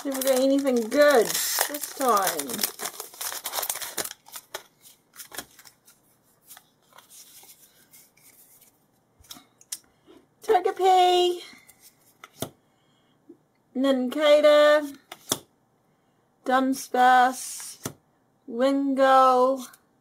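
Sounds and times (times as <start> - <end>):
foil wrapper crinkling and tearing: 0.0 - 6.0
cards rustling and clicking: 0.0 - 9.8, 11.6 - 12.6.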